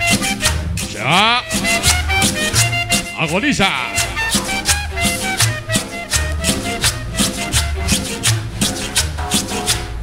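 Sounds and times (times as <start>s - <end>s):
bass line: 0.0s - 8.6s
cumbia music with steady beat: 0.0s - 10.0s.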